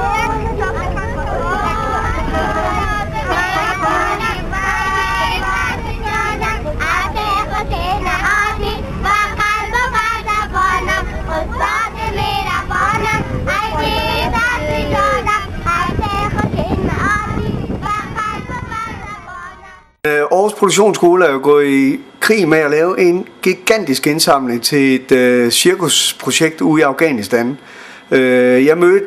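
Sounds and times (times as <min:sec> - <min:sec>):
bus rumble: 0:00.0 - 0:20.0
children singing and shouting: 0:00.0 - 0:20.0.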